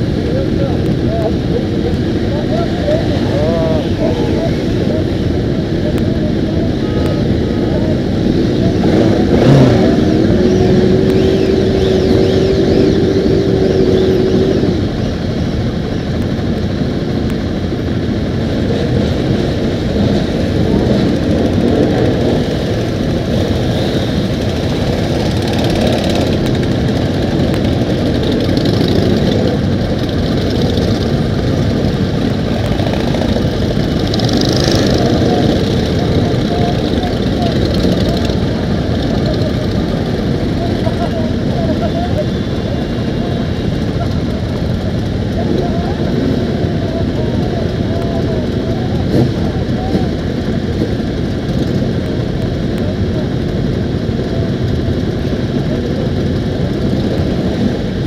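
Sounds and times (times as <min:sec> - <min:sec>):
motorcycles idling and revving: 0:00.0 - 0:58.0.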